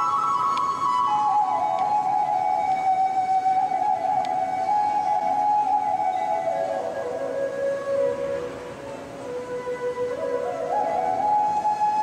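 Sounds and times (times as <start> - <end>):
solo flute melody: 0.0 - 12.0.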